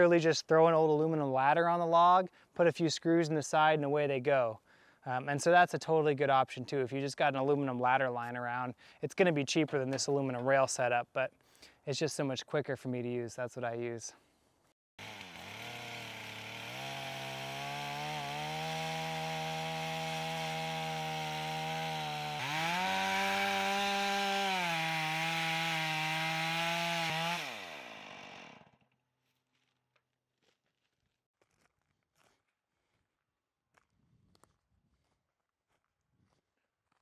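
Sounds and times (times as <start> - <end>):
chainsaw ripping through log: 15.0 - 28.9.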